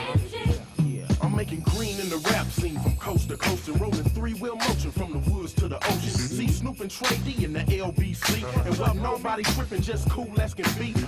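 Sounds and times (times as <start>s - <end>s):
rapping over a beat: 0.0s - 11.0s.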